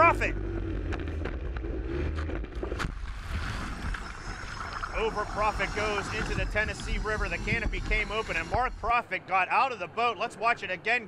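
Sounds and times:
outboard engine running: 0.0 - 8.8.

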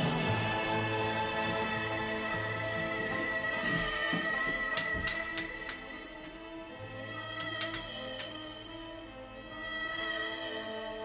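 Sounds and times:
music of sustained tones: 0.0 - 11.0.

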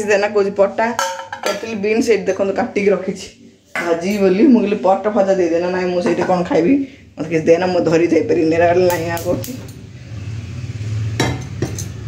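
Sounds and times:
woman speaking: 0.0 - 9.7.

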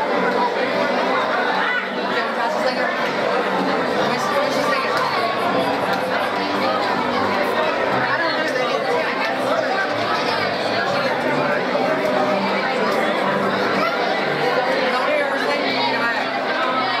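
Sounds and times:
congregation chatting: 0.0 - 17.0.

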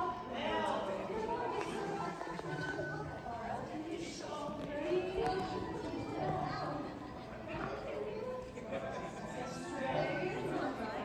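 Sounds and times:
people chattering in a hall: 0.0 - 11.0.

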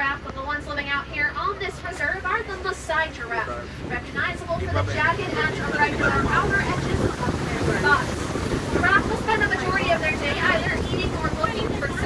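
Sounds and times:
truck engine and road noise: 0.0 - 12.0
wind buffeting microphone: 1.6 - 12.0.

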